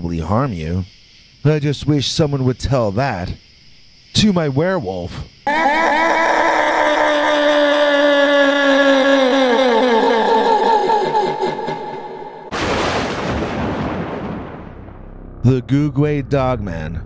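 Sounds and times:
sudden boom: 12.5s - 17.0s.

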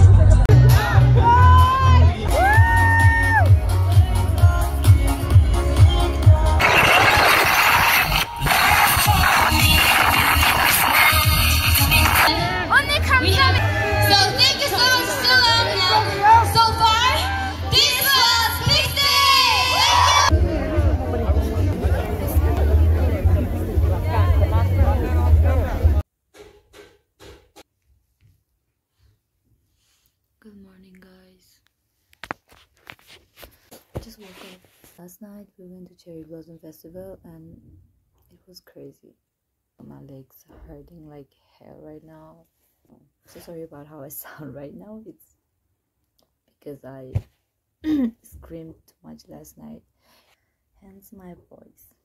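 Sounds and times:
live pop music distorted: 0.0s - 13.6s.

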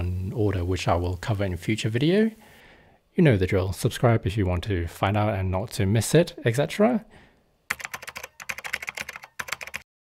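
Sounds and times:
computer keyboard typing: 7.7s - 9.9s.

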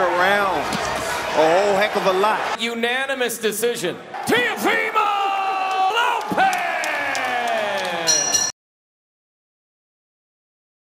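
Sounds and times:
crowd cheering: 0.0s - 2.6s, 4.1s - 8.5s.

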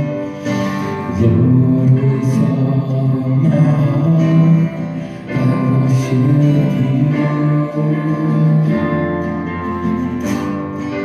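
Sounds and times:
guitar strumming chords: 0.0s - 11.0s.

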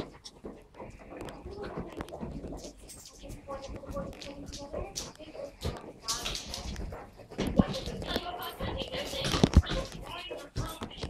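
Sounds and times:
thumps: 0.0s - 11.0s.

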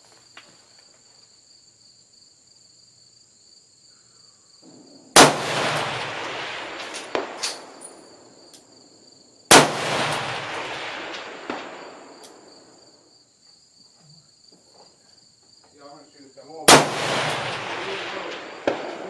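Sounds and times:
insects buzzing: 0.0s - 19.0s
rifle shots with rolling echo: 4.6s - 8.5s, 9.5s - 13.0s, 16.6s - 19.0s
bullet clanging on steel target: 10.0s - 11.2s, 17.1s - 19.0s.

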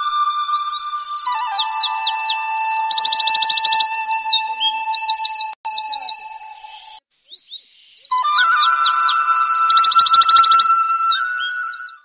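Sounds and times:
high chirps: 0.0s - 7.0s, 7.9s - 12.0s
music with sustained tones: 0.0s - 7.0s, 8.2s - 12.0s.

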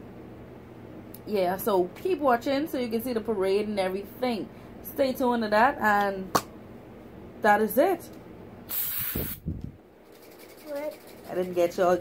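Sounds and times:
aerosol can spray hiss: 8.7s - 9.4s.

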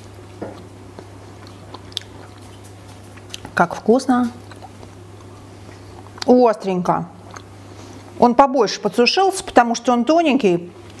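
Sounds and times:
person chewing: 0.0s - 3.6s, 4.4s - 6.3s, 7.2s - 7.7s.

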